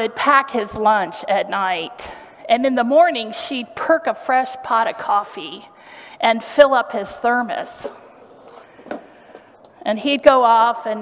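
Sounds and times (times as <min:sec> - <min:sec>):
woman speaking: 0:00.0 - 0:08.0, 0:09.8 - 0:11.0.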